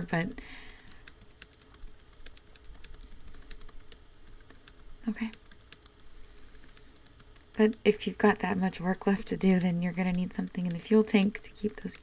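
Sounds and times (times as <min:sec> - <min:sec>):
keyboard typing: 0:00.0 - 0:12.0.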